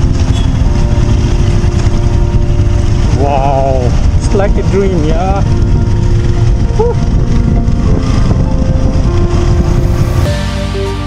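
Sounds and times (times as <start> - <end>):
background music: 0.0 - 11.0
motorcycle engine rumble: 0.0 - 11.0
road and wind noise: 0.0 - 11.0.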